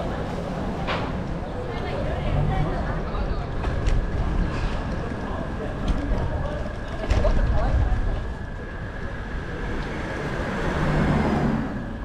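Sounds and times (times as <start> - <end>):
steady traffic noise: 0.0 - 12.0
car passing: 8.4 - 12.0.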